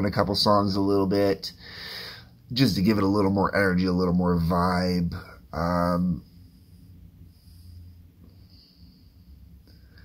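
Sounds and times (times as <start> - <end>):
faint low hum: 0.0 - 10.0
faint high whine: 1.0 - 10.0.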